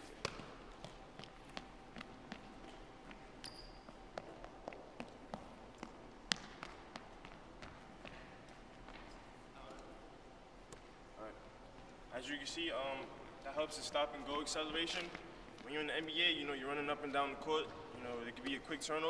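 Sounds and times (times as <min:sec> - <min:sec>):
sneaker squeak: 0:02.7 - 0:04.4.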